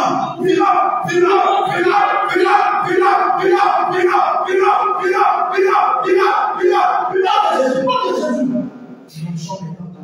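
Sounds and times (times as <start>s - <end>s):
group chanting in unison: 0.0s - 8.7s.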